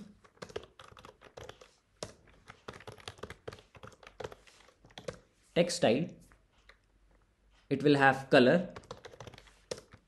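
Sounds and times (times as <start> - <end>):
computer keyboard typing: 0.0 - 5.3, 8.6 - 10.0.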